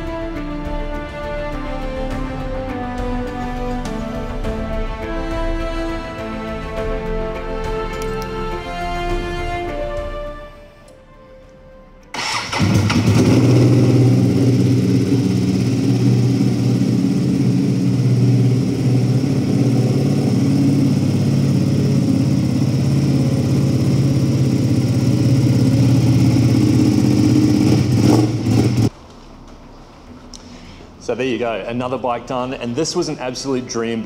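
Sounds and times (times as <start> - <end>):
motorcycle engine starting: 12.1 - 29.0
motorcycle engine idling: 12.2 - 28.9.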